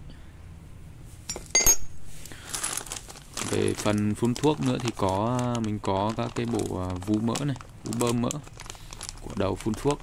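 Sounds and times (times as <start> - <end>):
plastic bag rustling: 2.0 - 10.0.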